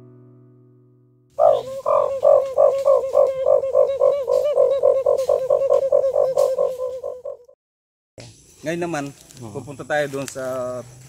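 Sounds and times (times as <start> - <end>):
boy making rhythmic pulsing call: 1.4 - 7.6.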